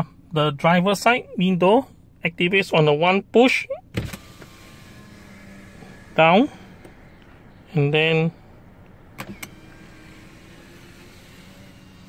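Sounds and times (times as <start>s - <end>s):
window motor running: 3.9s - 12.0s
power window switch clicking: 8.8s - 11.7s.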